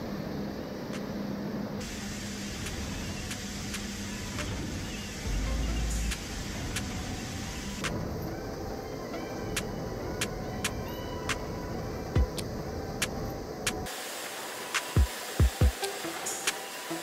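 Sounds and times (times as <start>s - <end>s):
hydraulic hum and hiss: 0.0s - 17.0s.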